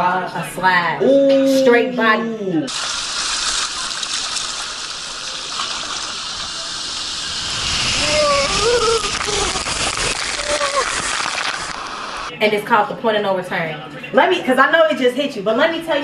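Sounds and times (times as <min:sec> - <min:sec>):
water rushing down slide: 0:02.7 - 0:12.3
water splashing: 0:02.7 - 0:12.3.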